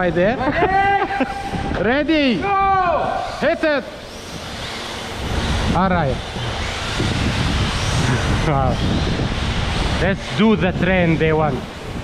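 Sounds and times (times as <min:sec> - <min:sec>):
electric motor whine: 0:00.0 - 0:12.0.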